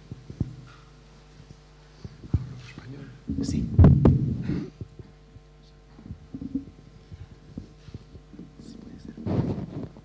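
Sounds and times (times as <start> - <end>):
sound system hum: 0.0 - 10.0
thumps on microphone: 0.1 - 0.8, 2.0 - 2.6, 3.3 - 8.3, 9.2 - 10.0.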